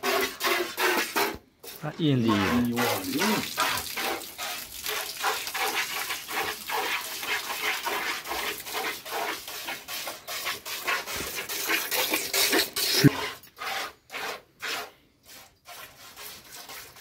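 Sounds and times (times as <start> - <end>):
milk squirting into metal pail: 0.0 - 17.0.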